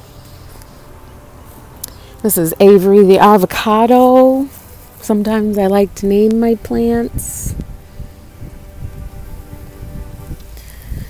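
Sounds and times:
faint sustained tones: 0.0s - 11.0s.

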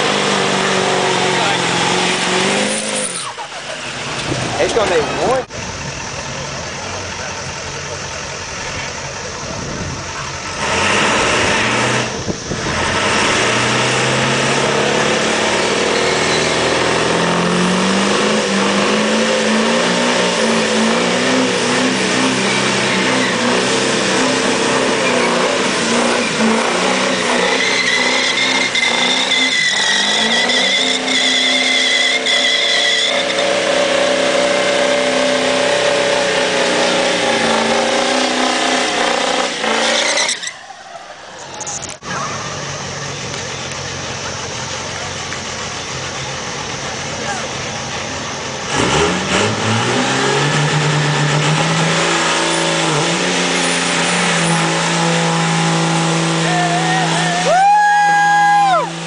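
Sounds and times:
diesel engine revving: 0.0s - 59.0s
tyres spinning on pavement: 18.6s - 48.7s
high wavering squeal: 21.2s - 38.8s, 39.4s - 43.2s.

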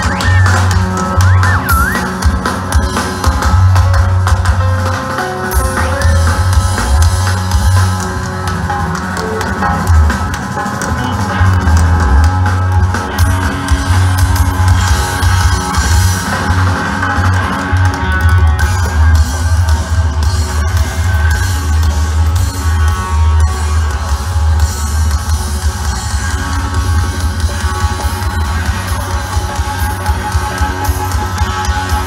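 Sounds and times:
live band playing loud music: 0.0s - 32.0s.

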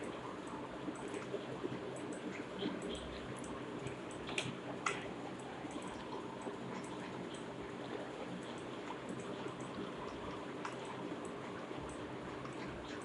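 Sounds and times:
microphone hiss and room noise: 0.0s - 13.0s.

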